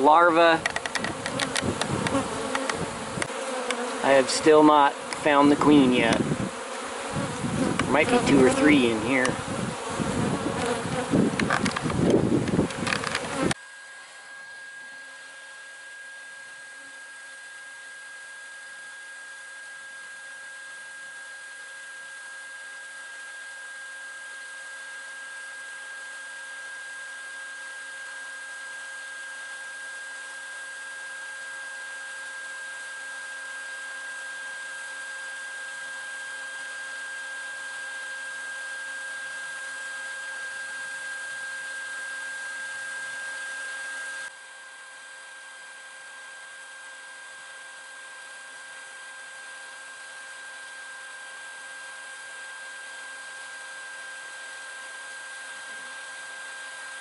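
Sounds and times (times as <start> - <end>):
bee vacuum whining: 0.0 - 57.0.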